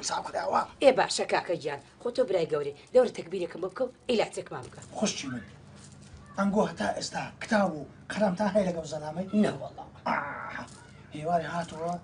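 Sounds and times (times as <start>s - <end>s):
voices in conversation: 0.0s - 12.0s.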